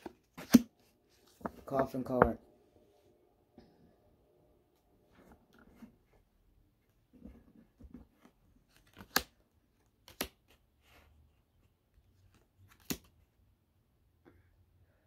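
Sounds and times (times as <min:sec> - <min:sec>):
cards rustling and sliding: 0:00.0 - 0:01.8, 0:08.0 - 0:11.0, 0:12.2 - 0:13.2.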